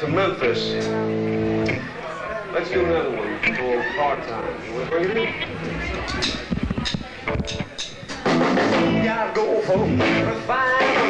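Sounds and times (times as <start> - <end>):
rock and roll band playing: 0.0 - 2.0, 4.6 - 11.0
voices: 0.0 - 11.0.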